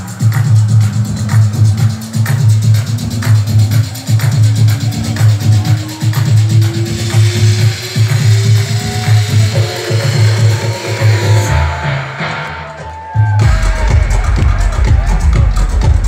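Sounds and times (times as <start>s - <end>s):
heavy bass: 0.0s - 16.0s
heavy kick drum: 0.0s - 16.0s
loud techno music: 0.0s - 16.0s.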